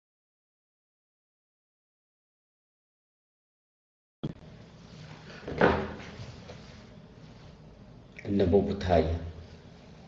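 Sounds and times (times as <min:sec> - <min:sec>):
low room hum: 0:04.2 - 0:10.0.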